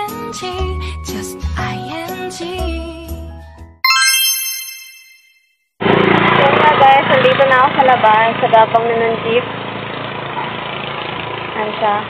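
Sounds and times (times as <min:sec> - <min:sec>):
background music: 0:01.0 - 0:05.2
bright ding sound effect: 0:03.8 - 0:05.4.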